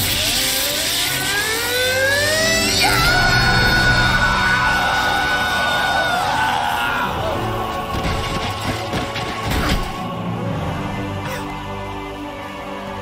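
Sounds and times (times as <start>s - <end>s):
crackling electricity: 0.0s - 6.2s
music: 0.0s - 13.0s
man screaming: 2.6s - 7.5s.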